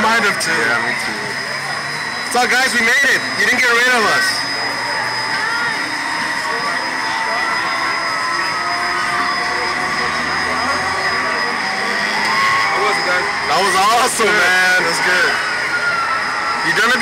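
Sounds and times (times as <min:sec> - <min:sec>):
continuous background rush: 0:00.0 - 0:17.0
high-pitched hum: 0:00.0 - 0:17.0.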